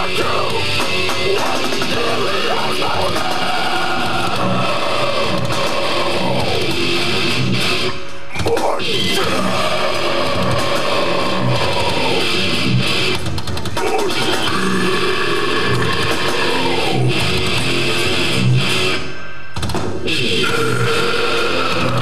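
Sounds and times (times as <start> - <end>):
distorted electric guitars: 0.0 - 22.0
drums: 0.0 - 22.0.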